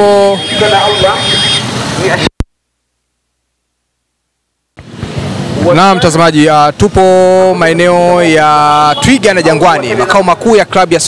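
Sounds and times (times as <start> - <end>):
voices: 0.0 - 2.3, 5.6 - 11.0.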